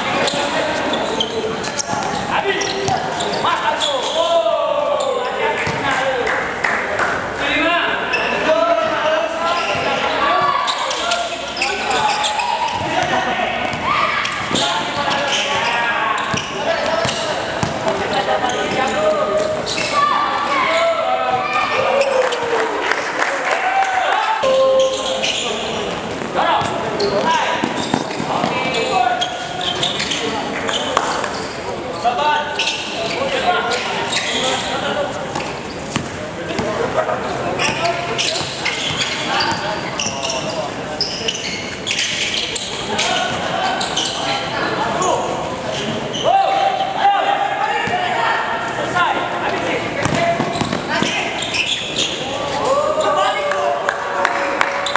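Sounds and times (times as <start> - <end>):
people's voices: 0.0 - 54.9
basketball bouncing on court: 16.2 - 18.1, 50.0 - 51.2.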